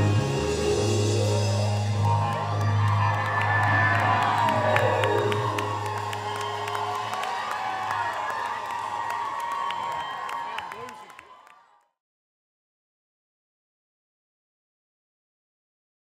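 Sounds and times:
electric guitar and bass chord: 0.0s - 6.3s
crowd cheering and whooping: 0.0s - 11.8s
people clapping: 1.8s - 12.0s.

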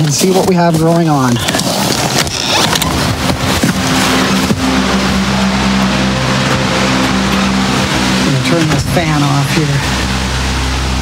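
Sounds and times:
fan motor hum and air rush: 1.7s - 11.0s.

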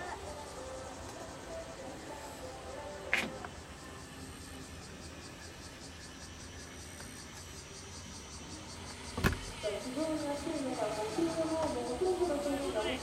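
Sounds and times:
faint outdoor background noise: 0.0s - 13.0s.

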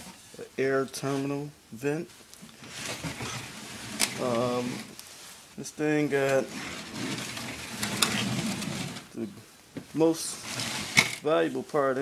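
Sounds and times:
sheet metal scraping and rattling: 2.6s - 4.9s, 6.2s - 9.1s, 10.3s - 11.2s.

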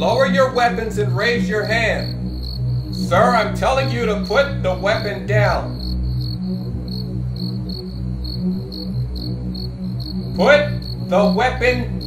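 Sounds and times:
crickets chirping: 0.0s - 12.0s
low music drone: 0.0s - 12.0s.

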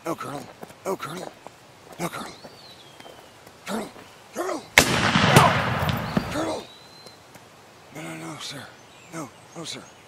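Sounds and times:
revolver gunshots: 4.8s - 6.5s.

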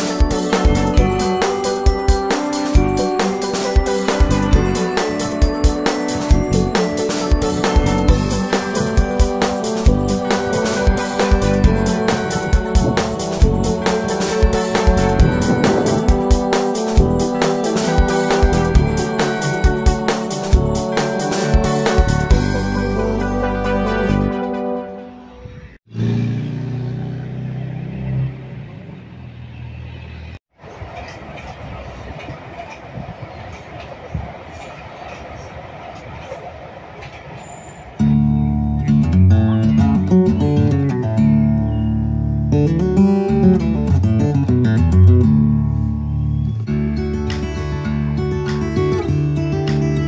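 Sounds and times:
guitar music: 0.0s - 25.2s, 38.0s - 50.0s.

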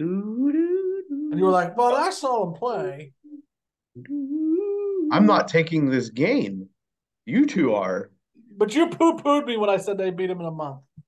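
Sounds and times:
man humming: 0.0s - 1.7s, 3.2s - 5.3s.

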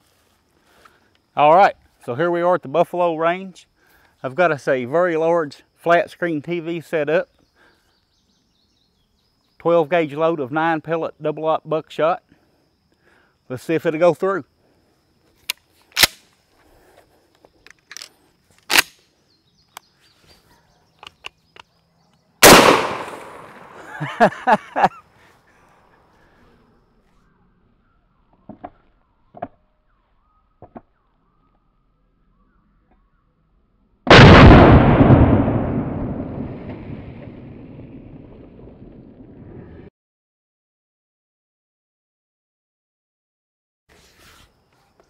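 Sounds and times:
deep blast: 22.4s - 23.8s, 34.1s - 39.9s
shotgun blast: 22.4s - 23.8s, 34.1s - 38.0s
person laughing: 23.7s - 25.6s.

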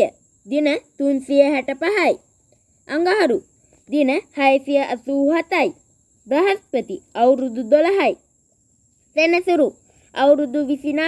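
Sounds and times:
faint high-pitched whine: 0.0s - 11.0s
person narrating: 2.9s - 8.2s, 9.2s - 11.0s.

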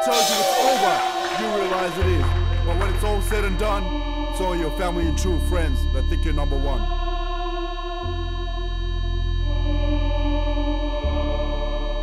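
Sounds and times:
low bass note: 0.0s - 7.0s
sustained keyboard chords: 0.0s - 7.0s.

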